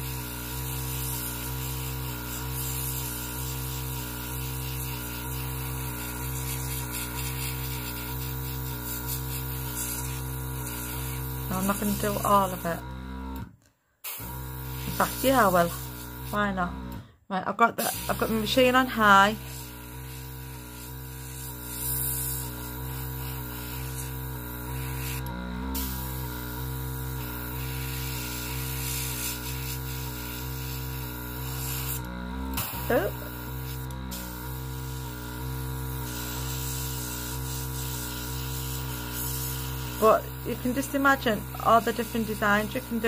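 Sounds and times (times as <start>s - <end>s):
airbrush hissing: 0.0s - 13.4s, 14.0s - 17.0s, 17.8s - 43.0s
compressor low hum: 0.0s - 43.0s.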